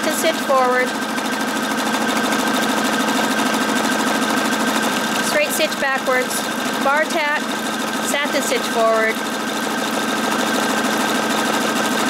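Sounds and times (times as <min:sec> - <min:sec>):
sewing machine stitching: 0:00.0 - 0:12.0.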